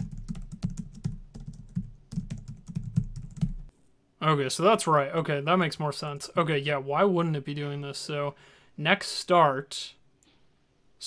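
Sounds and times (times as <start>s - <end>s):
fast typing on computer keyboard: 0.0s - 3.7s.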